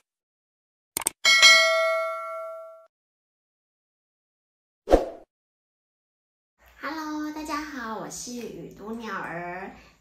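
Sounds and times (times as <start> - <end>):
bright bell ding: 1.2 - 2.9.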